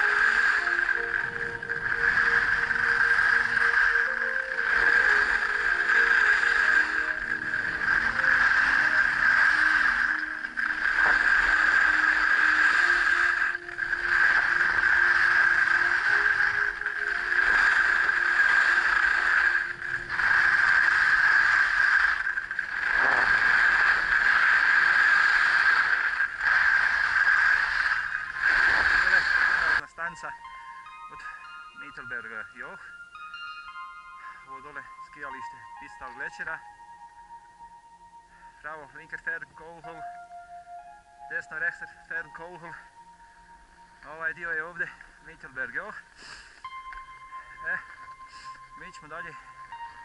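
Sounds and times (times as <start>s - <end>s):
skis scraping over snow: 0.0s - 30.2s.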